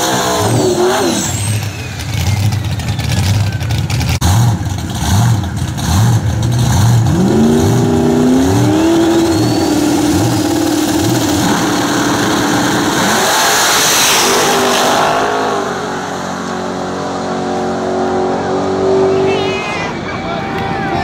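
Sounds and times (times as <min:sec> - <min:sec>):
drag car engines revving: 0:00.0 - 0:21.0.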